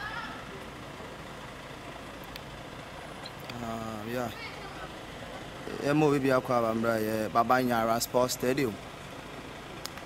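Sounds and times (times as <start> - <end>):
bus engine idling: 0.0 - 10.0
faint outdoor voices: 0.0 - 10.0.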